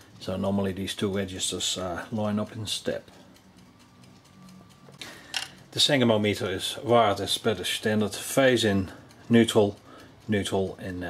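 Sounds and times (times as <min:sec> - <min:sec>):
faint mechanical ticking: 0:00.0 - 0:11.0
low electrical hum: 0:00.0 - 0:11.0.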